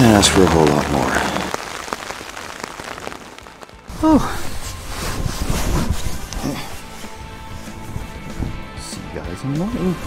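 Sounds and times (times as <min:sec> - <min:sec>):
rain pattering on tent fabric: 0:00.0 - 0:08.1.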